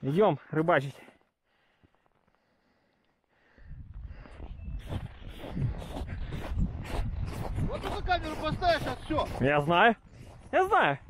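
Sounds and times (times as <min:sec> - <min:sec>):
footsteps crunching through snow: 0:04.2 - 0:11.0.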